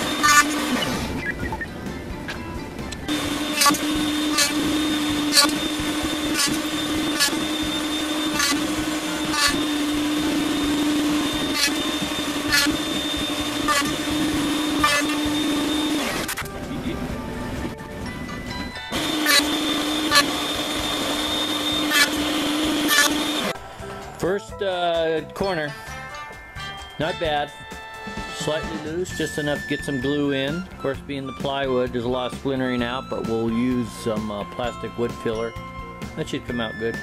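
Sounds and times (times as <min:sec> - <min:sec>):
router bit cutting wood: 0:00.0 - 0:01.2, 0:03.0 - 0:17.7, 0:18.9 - 0:23.7
router whining: 0:00.0 - 0:24.2.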